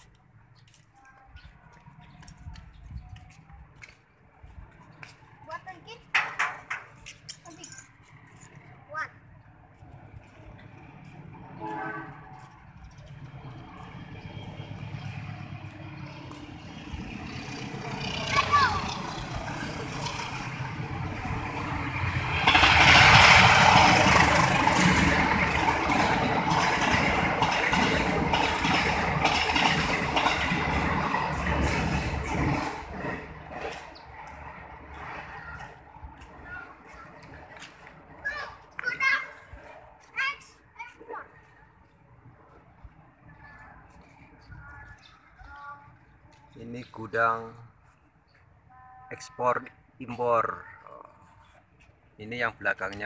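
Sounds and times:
train passing: 3.3s - 53.0s.

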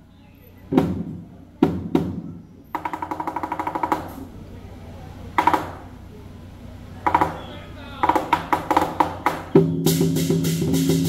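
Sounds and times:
drum and cymbals percussion band: 7.1s - 11.0s.

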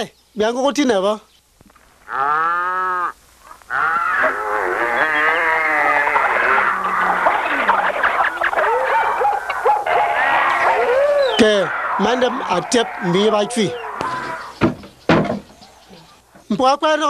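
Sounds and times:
long drawn-out call: 2.0s - 14.7s
crowd jeering: 4.1s - 14.6s.

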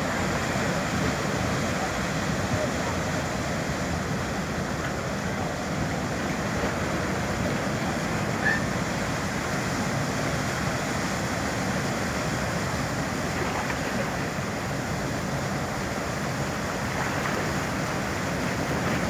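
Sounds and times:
ferry engines rumbling: 0.0s - 10.8s
propeller wash churning water: 0.0s - 19.0s.

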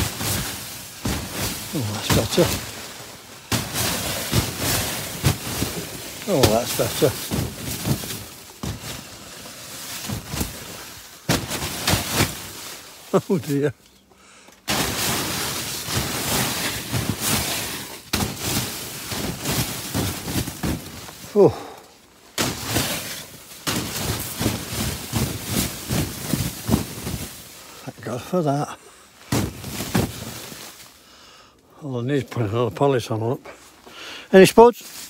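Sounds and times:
snow sliding off netting: 0.0s - 13.7s, 14.7s - 28.6s, 29.2s - 31.0s
net rustling and thumping: 0.0s - 13.8s, 14.6s - 28.3s, 29.2s - 31.0s.

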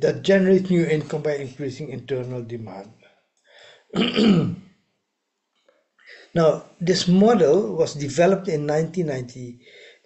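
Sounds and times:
man clearing his throat: 4.0s - 4.6s.

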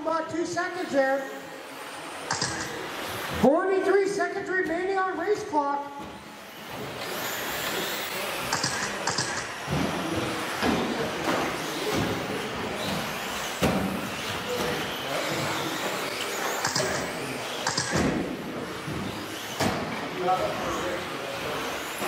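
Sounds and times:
toy cars thudding on track: 2.2s - 3.4s, 6.4s - 20.8s, 21.4s - 22.0s.

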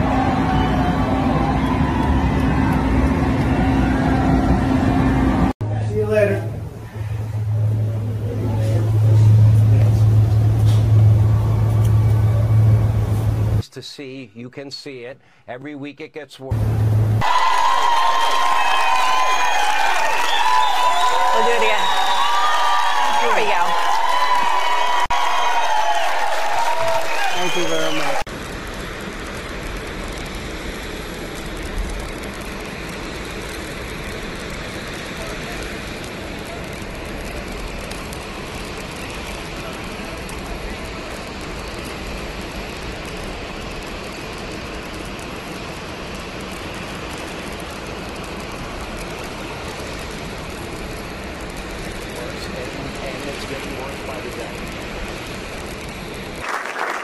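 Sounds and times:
low rumble: 0.0s - 13.6s, 16.5s - 27.0s
steady rushing noise: 0.0s - 13.6s, 16.5s - 56.4s
street traffic hum: 0.0s - 13.7s, 16.5s - 22.0s, 27.4s - 56.4s.

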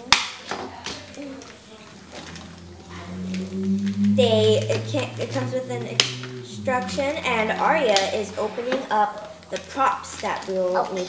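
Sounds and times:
low steady hum: 1.6s - 10.8s.

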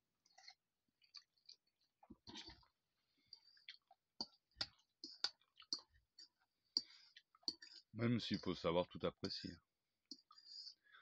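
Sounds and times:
mouth clicks and smacks eating: 3.3s - 7.9s.

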